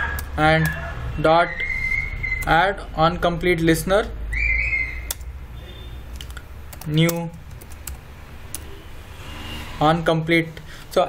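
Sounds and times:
typing on computer keyboard: 0.0 - 0.8, 5.1 - 5.3, 6.1 - 8.7.

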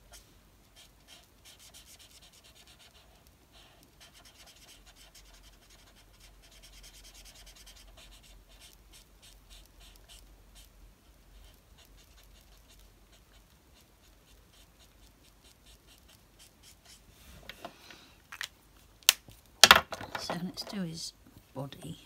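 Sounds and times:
marker scratching on paper: 0.8 - 17.1.

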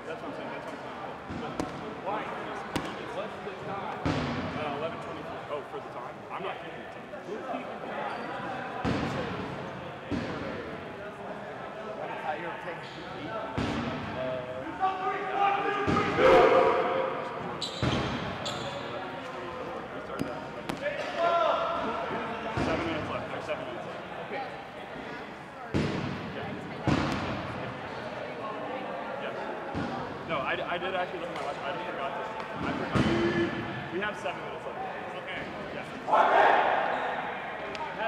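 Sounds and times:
players' voices and calls: 0.0 - 38.0
balls bouncing on gym floor: 1.3 - 1.9, 2.7 - 3.0, 20.1 - 21.1, 25.7 - 27.4.

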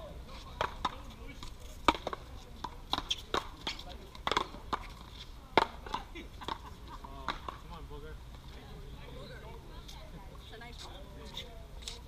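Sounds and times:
ball smacked by paddles: 0.6 - 6.6, 7.2 - 7.7.

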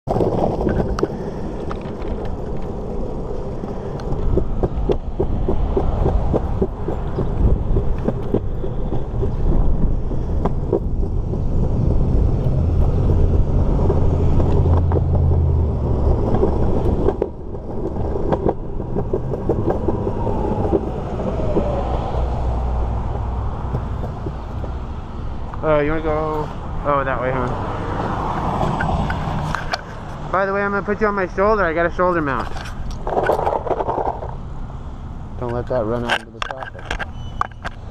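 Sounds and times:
skateboard wheels rolling on concrete: 0.0 - 37.9
wheels clicking over cracks: 0.1 - 26.4, 27.4 - 34.4, 35.4 - 37.9.

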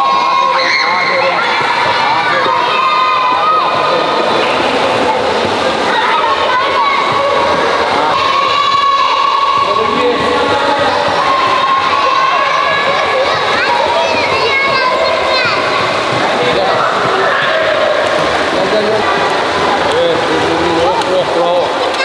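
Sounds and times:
children shouting: 0.0 - 19.9
water splashing: 0.0 - 22.0.

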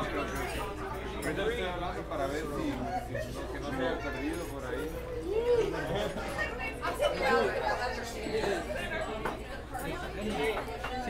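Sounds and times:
restaurant chatter: 0.0 - 11.0.

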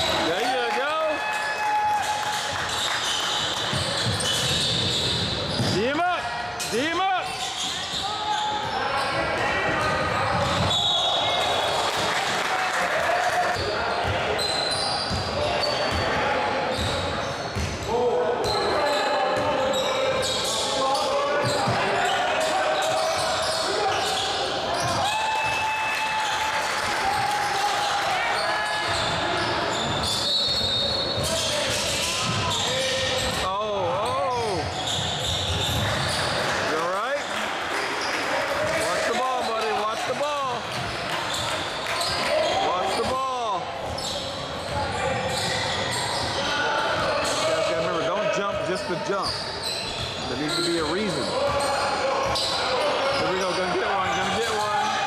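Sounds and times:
hubbub of indistinct voices: 0.0 - 1.2, 1.8 - 55.0
sneaker squeaks: 2.3 - 11.5, 13.5 - 25.6, 27.1 - 36.4, 40.7 - 54.9.

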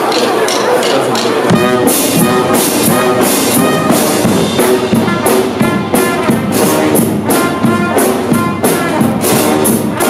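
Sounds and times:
brass band playing: 0.0 - 10.0.

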